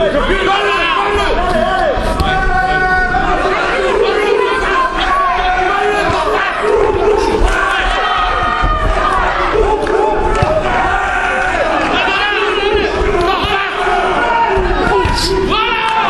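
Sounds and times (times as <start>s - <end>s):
crowd shouting and yelling: 0.0s - 16.0s.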